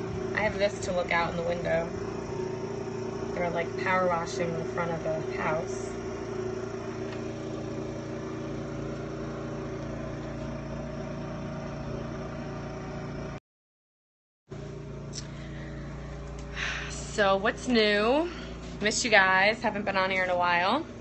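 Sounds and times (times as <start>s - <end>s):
pressure washer engine running: 0.0s - 13.4s, 14.6s - 21.0s.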